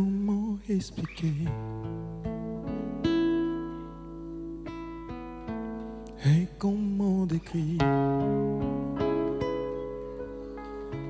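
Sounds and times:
classical guitar playing: 0:00.0 - 0:11.0.

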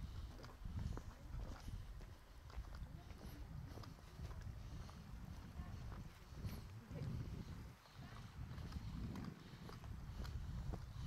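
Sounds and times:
footsteps on dirt trail: 0:00.0 - 0:11.0
steady low rumble: 0:00.0 - 0:11.0.

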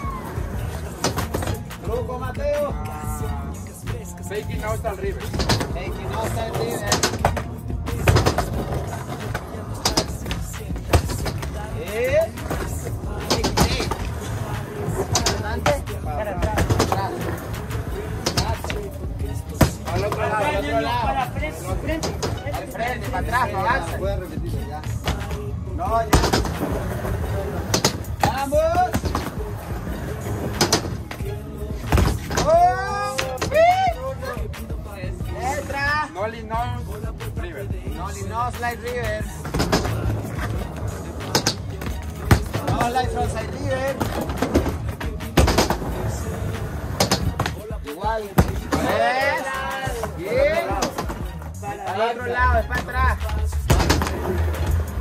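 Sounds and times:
skateboard wheels rolling on concrete: 0:00.0 - 0:55.0
skateboard clacking on ledge: 0:05.2 - 0:19.0, 0:39.4 - 0:47.7.

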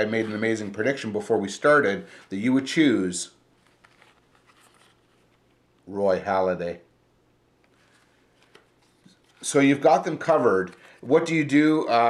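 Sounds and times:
man talking: 0:00.0 - 0:03.4, 0:05.9 - 0:06.9, 0:09.4 - 0:12.0
cardboard handling rustles: 0:03.6 - 0:05.8, 0:07.7 - 0:11.2.

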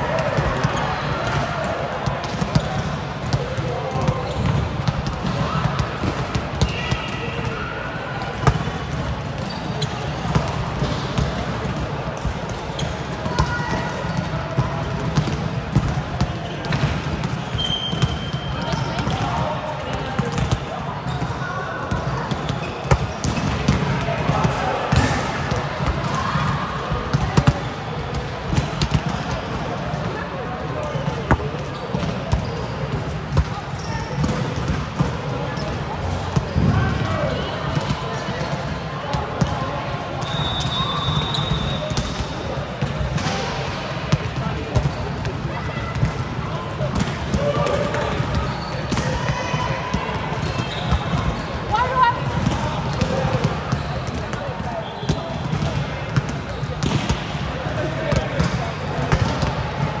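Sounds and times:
players' voices echoing: 0:00.0 - 1:00.0
volleyballs smacking and bouncing: 0:00.1 - 0:07.4, 0:08.2 - 0:30.2, 0:41.9 - 1:00.0.

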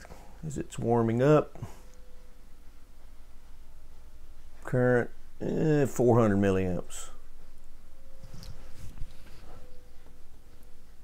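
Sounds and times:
radio low steady hum: 0:00.0 - 0:11.0.

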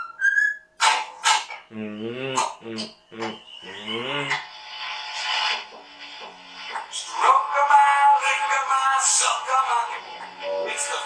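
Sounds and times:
cockatiel whistling a tune: 0:00.0 - 0:00.7
low voice: 0:01.7 - 0:04.4
harsh noisy bursts: 0:03.6 - 0:11.0.

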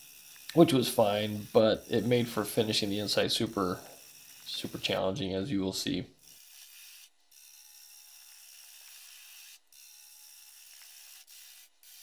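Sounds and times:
gouge scraping wood on lathe: 0:00.4 - 0:05.2.

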